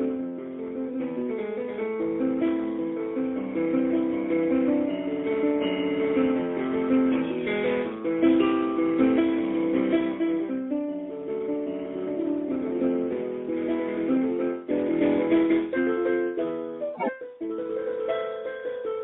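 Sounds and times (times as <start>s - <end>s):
solo instrument playing: 17.0s - 17.2s.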